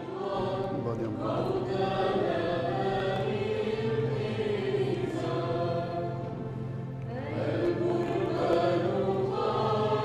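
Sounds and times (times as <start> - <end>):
choir singing a slow hymn: 0.0 - 10.0.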